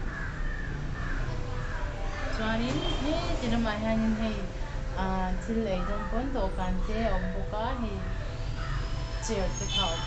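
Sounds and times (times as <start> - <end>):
crow cawing: 0.0 - 2.4, 5.7 - 6.3, 7.0 - 10.0.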